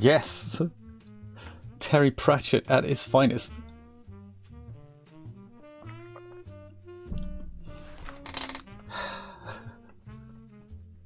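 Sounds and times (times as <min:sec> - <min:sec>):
jazz with brass and saxophone: 0:04.0 - 0:07.1.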